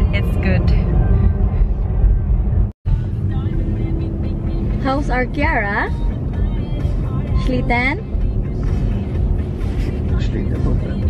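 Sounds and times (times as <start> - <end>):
woman speaking: 0.0 - 0.9, 4.8 - 6.0, 7.4 - 8.1
road and tyre rumble: 0.0 - 11.0.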